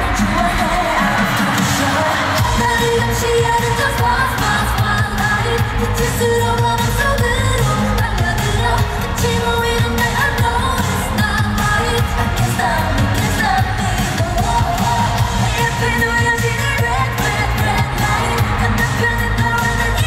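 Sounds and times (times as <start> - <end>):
girl group singing live: 0.0 - 20.0
loud pop backing music: 0.0 - 20.0.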